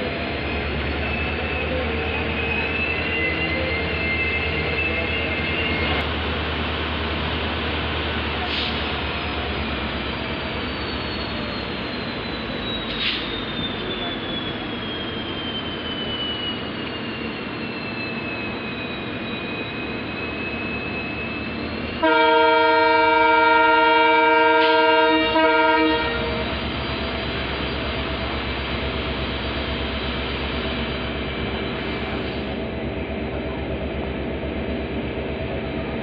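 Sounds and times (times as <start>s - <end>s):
train rumble: 20.4s - 36.0s
diesel locomotive horn blast: 22.0s - 26.5s.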